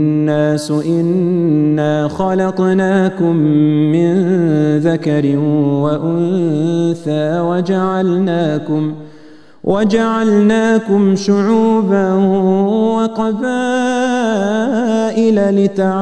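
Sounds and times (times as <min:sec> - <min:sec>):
man chanting melodically: 0:00.0 - 0:16.0.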